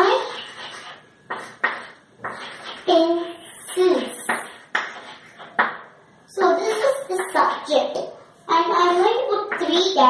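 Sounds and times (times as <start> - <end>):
chalk tapping on blackboard: 0.0 - 5.9, 6.6 - 7.8.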